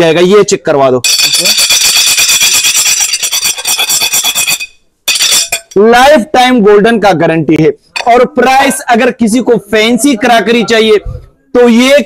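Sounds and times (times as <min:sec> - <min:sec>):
knife scraping plate rim: 0:01.1 - 0:05.8.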